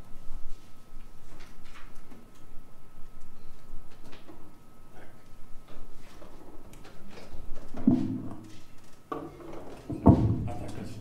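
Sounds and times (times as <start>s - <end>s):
instruments clicking and knocking: 5.6s - 11.0s.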